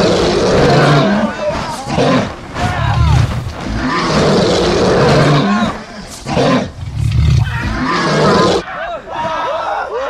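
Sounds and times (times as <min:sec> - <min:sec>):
creature growling roars: 0:00.0 - 0:08.6.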